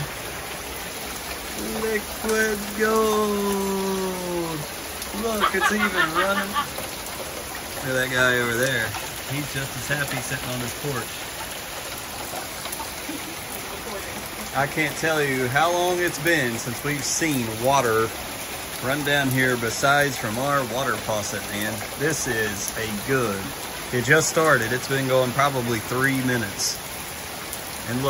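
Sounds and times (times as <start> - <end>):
heavy rain on concrete: 0.0 - 28.0
man talking: 1.5 - 6.7, 7.8 - 11.2, 14.5 - 18.2, 18.8 - 26.8.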